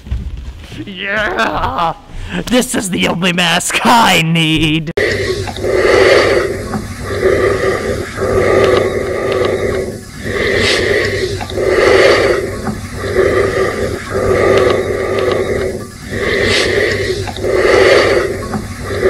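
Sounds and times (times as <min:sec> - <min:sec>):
raspy heavy breathing: 0:05.0 - 0:19.0.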